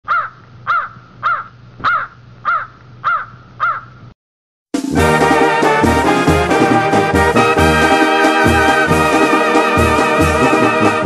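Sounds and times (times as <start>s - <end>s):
bird calling: 0.1s - 4.1s.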